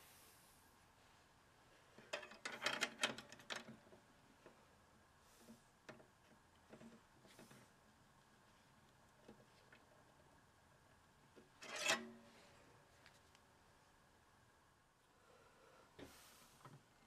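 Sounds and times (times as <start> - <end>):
screwdriver scrape: 11.6 - 12.0.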